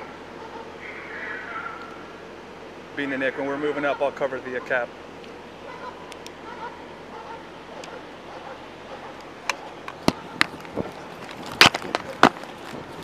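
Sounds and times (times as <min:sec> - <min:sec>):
steady low hiss: 0:00.0 - 0:13.0.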